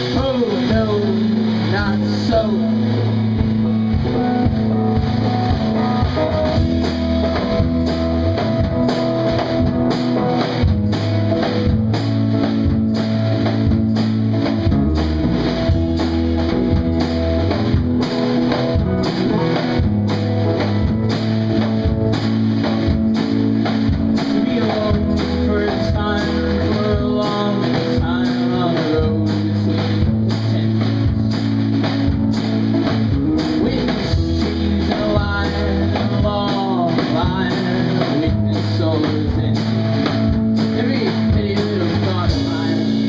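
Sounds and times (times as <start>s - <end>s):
drum-kit beat: 0.0s - 43.0s
electric guitar: 0.0s - 43.0s
live rock band playing: 0.0s - 43.0s.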